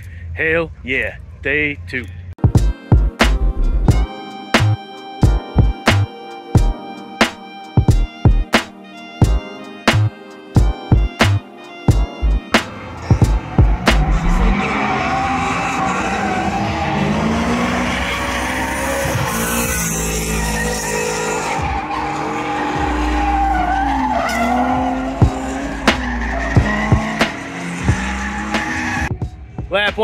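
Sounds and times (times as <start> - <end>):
car engines revving: 11.2 - 29.2
tyres squealing: 17.9 - 29.1.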